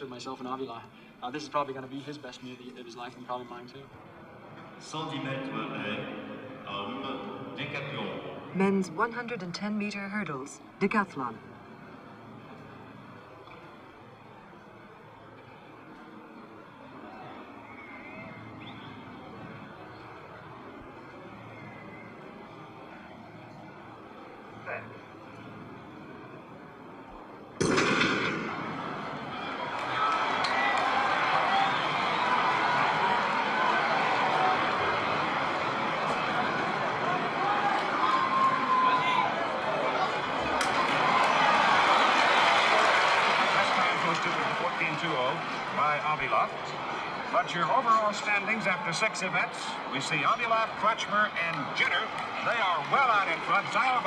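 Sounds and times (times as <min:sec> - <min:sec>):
stadium crowd murmur: 0:00.0 - 0:54.0
stadium crowd cheering: 0:11.4 - 0:54.0
starter's pistol shot: 0:27.6 - 0:28.8.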